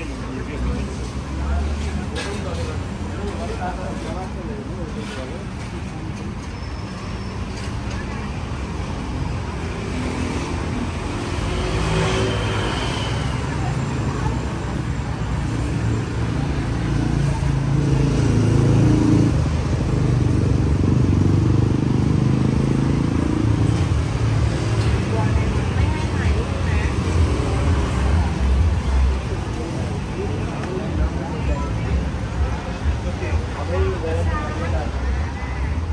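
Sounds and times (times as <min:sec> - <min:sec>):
cars and motorbikes passing: 0:00.0 - 0:35.9
vehicle engine rumble: 0:00.0 - 0:35.9.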